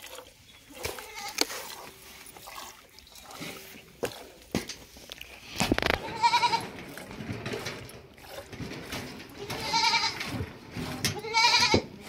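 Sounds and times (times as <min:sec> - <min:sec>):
goat bleating: 0:01.0 - 0:01.4, 0:05.8 - 0:06.8, 0:09.4 - 0:10.3, 0:11.1 - 0:11.9.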